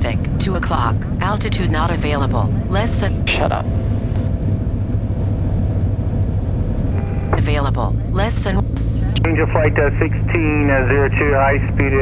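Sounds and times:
small plane engine and propeller: 0:08.7 - 0:12.0.

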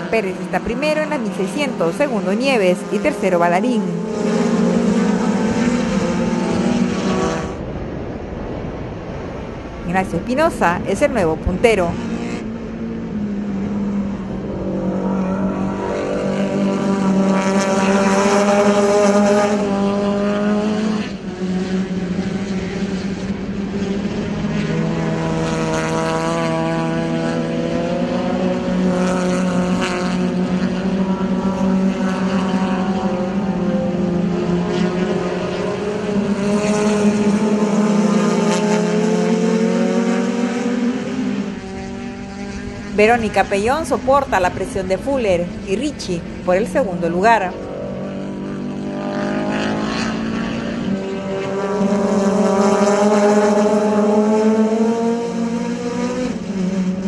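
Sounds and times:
race car engines at high revs: 0:00.0 - 0:57.0.

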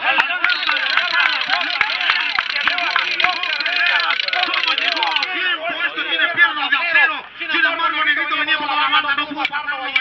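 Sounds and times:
voices calling out and talking: 0:00.0 - 0:10.0.

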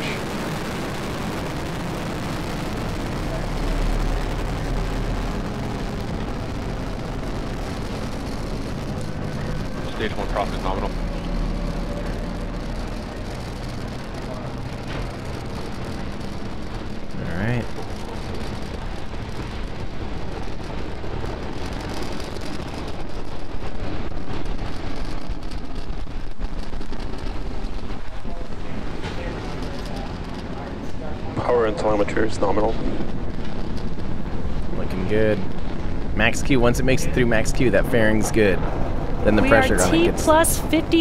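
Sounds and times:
rocket engines rumbling: 0:00.0 - 0:41.0.

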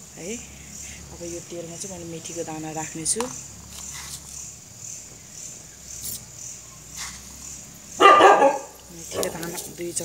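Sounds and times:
dog barking: 0:08.0 - 0:09.6.

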